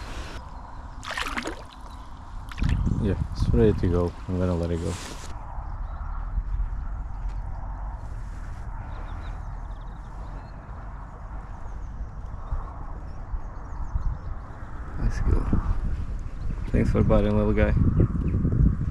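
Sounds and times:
wind on microphone: 0:00.0 - 0:18.9
water movement: 0:01.0 - 0:02.9.

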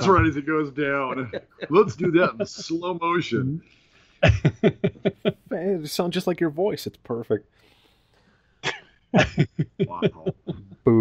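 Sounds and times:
men laughing: 0:00.0 - 0:03.0, 0:04.2 - 0:05.5, 0:09.2 - 0:10.9
man coughing: 0:08.6 - 0:10.8.

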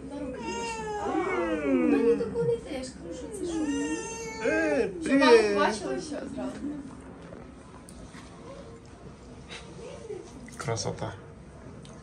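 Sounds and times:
baby crying: 0:00.4 - 0:02.1, 0:03.4 - 0:05.0.

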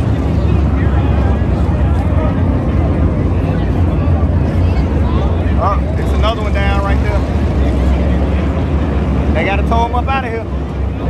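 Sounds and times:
faint crowd voices: 0:00.0 - 0:11.0
racing car engines rumbling: 0:00.0 - 0:11.0.

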